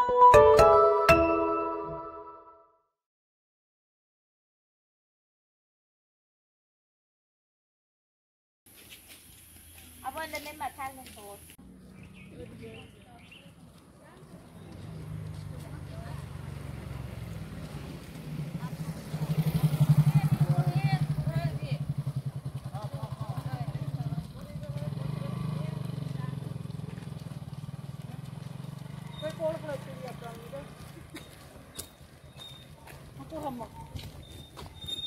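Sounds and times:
women talking: 10.0 - 11.6, 12.5 - 17.0, 19.9 - 21.9, 23.3 - 26.7, 29.0 - 31.1, 32.9 - 34.1
motorcycle engine running: 14.5 - 34.5.

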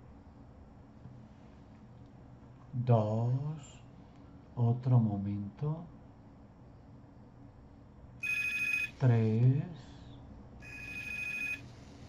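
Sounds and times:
warbling electronic telephone ring: 8.2 - 8.9, 10.6 - 11.6.

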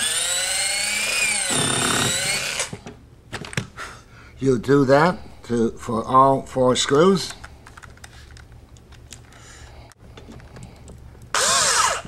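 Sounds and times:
low steady hum: 0.1 - 12.0.

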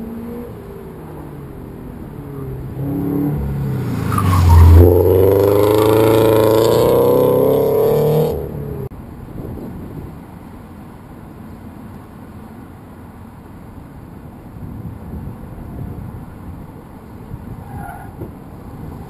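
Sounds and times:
car engine accelerating: 0.0 - 8.9.

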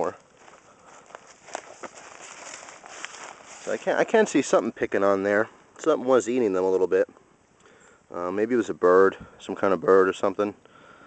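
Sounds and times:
footsteps in dry leaves: 0.0 - 4.6
soft background hiss: 0.0 - 11.0.

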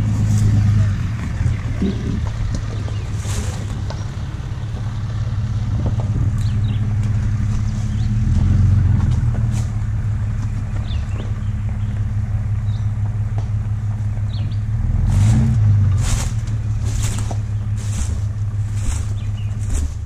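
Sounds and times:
vehicle engine running: 0.0 - 20.0.

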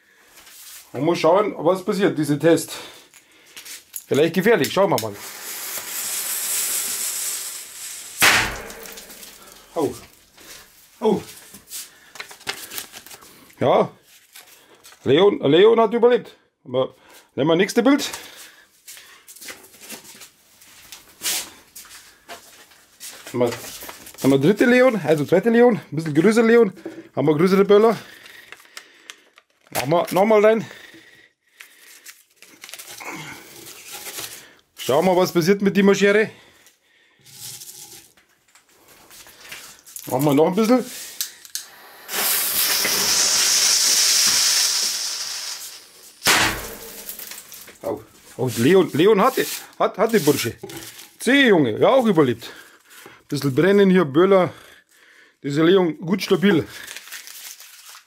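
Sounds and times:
short hiss: 5.1 - 9.8, 41.0 - 47.6
firecracker bang: 8.1 - 9.6, 46.2 - 47.5
paper photo rustling: 8.8 - 13.4, 14.0 - 15.1, 19.3 - 25.4, 27.7 - 30.5, 31.5 - 35.1, 46.8 - 52.2, 56.2 - 58.0.

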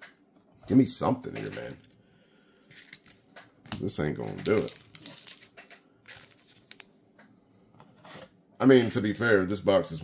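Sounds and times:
cards being flipped by hand: 2.7 - 6.9.

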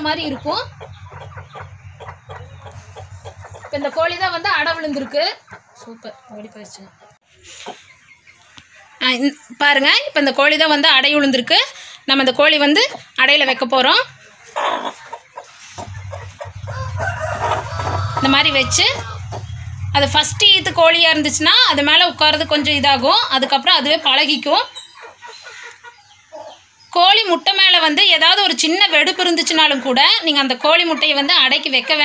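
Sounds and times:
chicken clucking: 0.0 - 9.0, 12.6 - 26.9.

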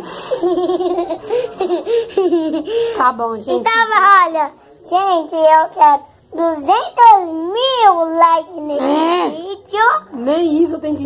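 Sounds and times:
young girl laughing: 0.3 - 2.8.

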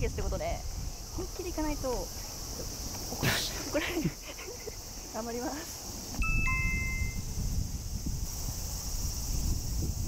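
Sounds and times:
two-note descending chime: 6.2 - 7.2.

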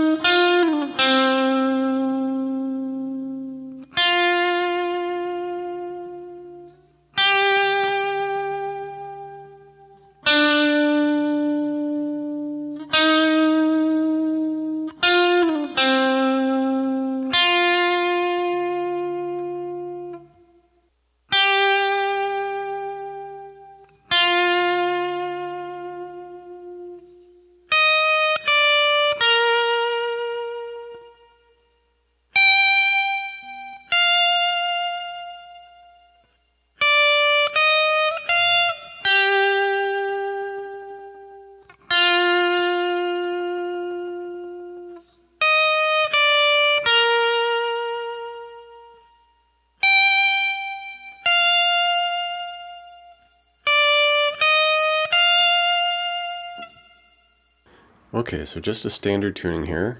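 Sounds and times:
electric guitar slow melody: 0.0 - 58.9.

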